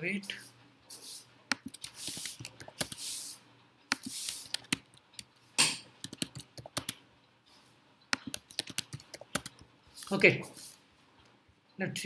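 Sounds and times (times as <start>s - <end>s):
keyboard typing clicks: 3.9s - 5.3s, 6.0s - 7.0s, 8.1s - 10.1s.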